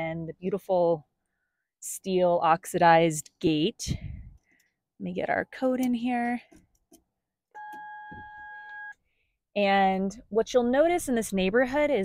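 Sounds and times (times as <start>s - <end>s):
keypad electronic beep: 7.6s - 9.0s.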